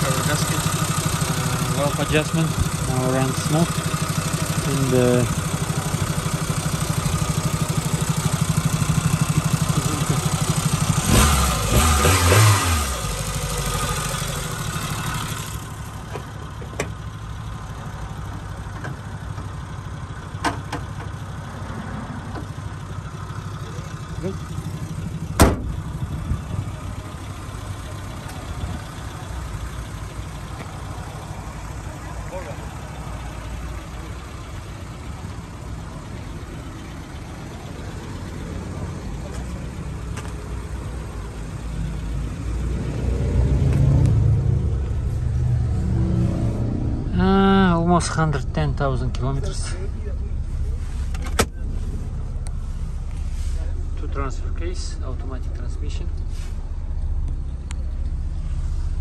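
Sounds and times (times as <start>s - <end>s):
car engine idling: 0.0s - 59.0s
engine revving in quick blips: 11.0s - 14.1s.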